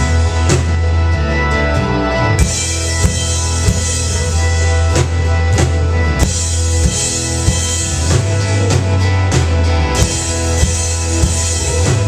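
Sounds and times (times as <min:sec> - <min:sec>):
live rock band playing: 0:00.0 - 0:12.0
low bass: 0:00.0 - 0:12.0.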